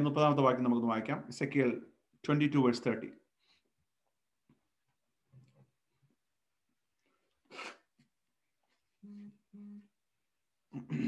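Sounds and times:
breathy nasal burst: 0:07.5 - 0:07.9.

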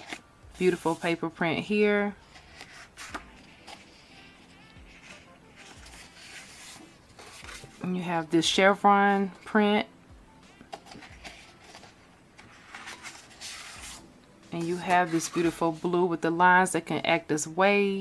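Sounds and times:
faint background music: 0:00.0 - 0:18.0
paper sheets rustling: 0:02.3 - 0:07.8, 0:10.7 - 0:14.0, 0:14.6 - 0:15.9
paper sheets rustling and sliding: 0:10.8 - 0:14.0.

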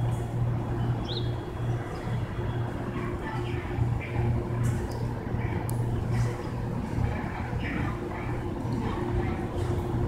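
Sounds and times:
distant diesel train engine drone: 0:00.0 - 0:10.0.

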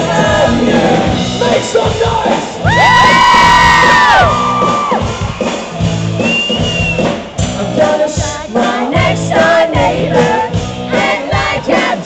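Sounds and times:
male lead vocal: 0:00.0 - 0:03.0, 0:07.4 - 0:12.0
live pop-rock band playing: 0:00.0 - 0:12.0
fans screaming: 0:02.6 - 0:07.3.

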